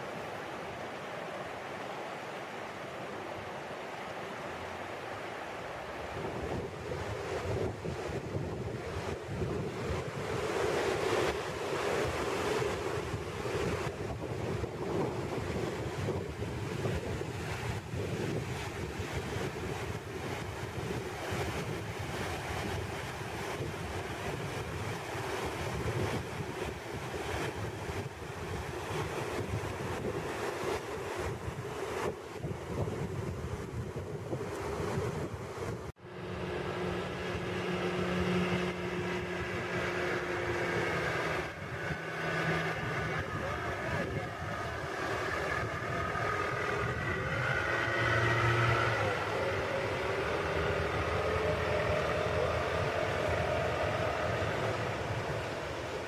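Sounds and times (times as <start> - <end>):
rapids rushing: 0.0 - 56.0
outboard motor running: 36.0 - 56.0
waterfall rushing: 36.0 - 56.0.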